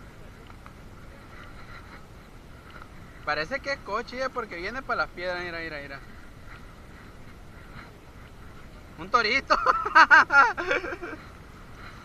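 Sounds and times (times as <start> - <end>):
faint far-off sounds: 0.0 - 12.0
sea: 0.0 - 12.0.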